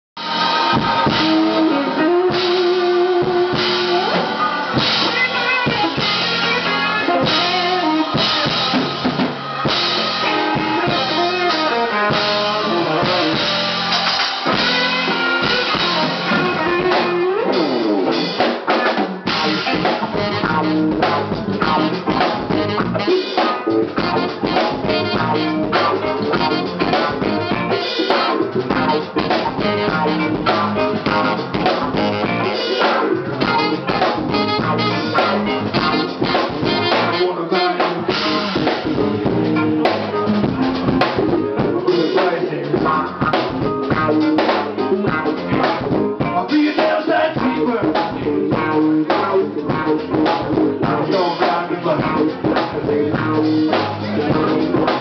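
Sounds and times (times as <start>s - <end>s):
saxophone: 0.2s - 18.4s, 19.2s - 51.3s
drum kit: 0.2s - 55.0s
electric bass: 0.2s - 55.0s
electric guitar: 0.2s - 55.0s.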